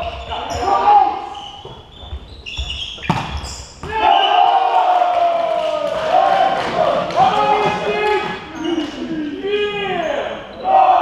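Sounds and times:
sports shoes squeaking on floor: 0.0s - 4.3s, 7.6s - 10.7s.

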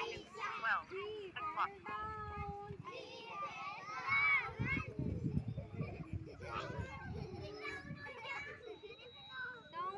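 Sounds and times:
children chattering and calling: 0.0s - 9.9s.

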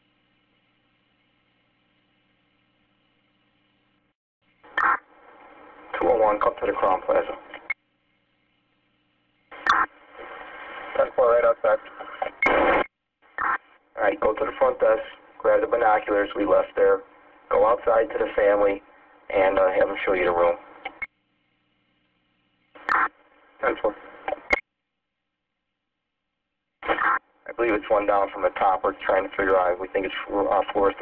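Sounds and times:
steady radio hum: 4.6s - 24.6s, 26.8s - 31.0s
radio transmission speech: 5.8s - 7.7s, 9.5s - 12.8s, 13.4s - 21.0s, 22.8s - 24.6s, 26.8s - 31.0s
radio click: 9.5s - 11.1s, 22.8s - 24.6s, 26.8s - 27.2s.

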